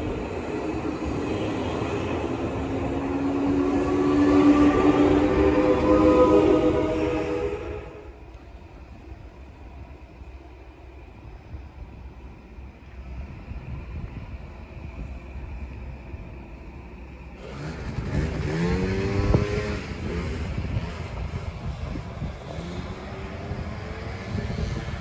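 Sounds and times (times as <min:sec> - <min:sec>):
vehicle engine passing: 0:17.4 - 0:25.0.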